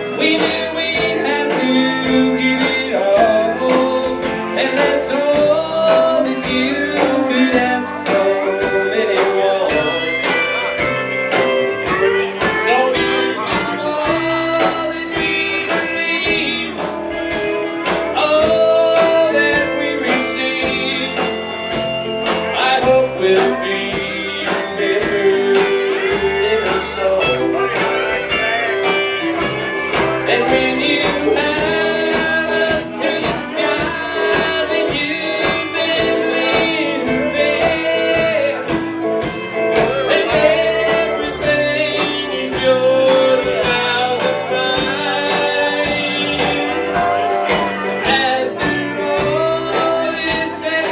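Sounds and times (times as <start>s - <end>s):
electric guitars picking melodic lines: 0.0s - 50.9s
steady drum beat: 0.0s - 50.9s.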